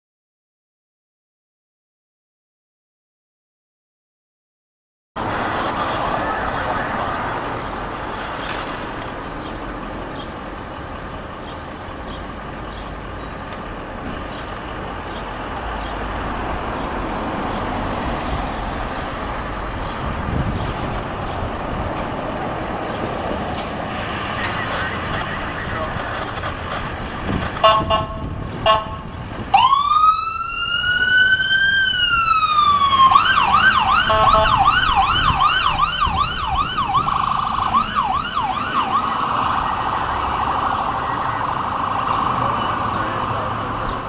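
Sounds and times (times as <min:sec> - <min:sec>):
road traffic: 0:05.2 - 0:44.0.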